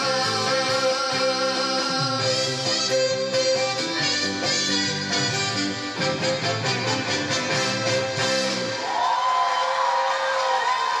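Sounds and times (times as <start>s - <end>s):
audience applauding and cheering: 8.2s - 11.0s.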